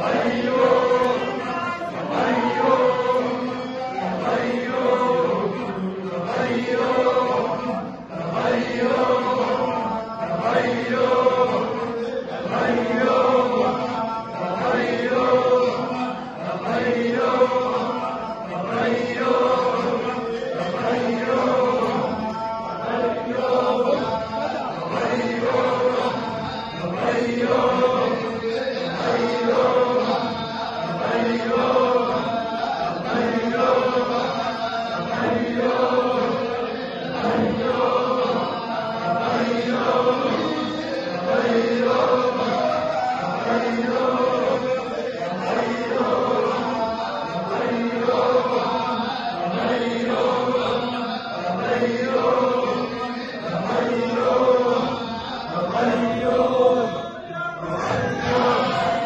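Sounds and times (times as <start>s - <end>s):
men chanting in unison: 0.0s - 59.0s.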